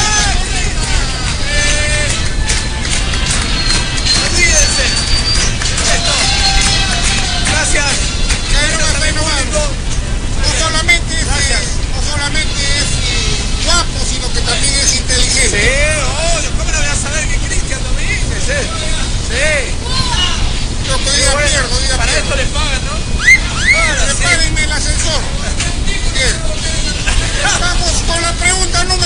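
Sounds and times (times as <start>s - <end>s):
background music: 0.0s - 15.8s
voices talking: 0.0s - 29.0s.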